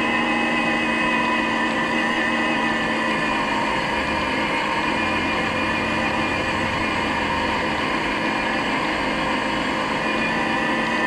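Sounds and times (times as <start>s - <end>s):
constant whining tones: 0.0s - 11.0s.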